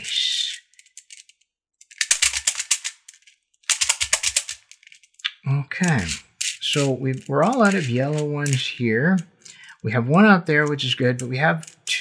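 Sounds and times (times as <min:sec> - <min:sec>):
puzzle beads clicking and rattling: 0:00.0 - 0:05.2, 0:05.8 - 0:09.8, 0:10.5 - 0:12.0.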